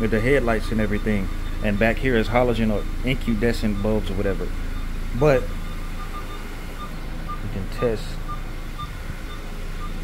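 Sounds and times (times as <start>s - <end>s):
car engine idling: 0.0s - 10.0s
faint short beeps: 0.7s - 10.0s.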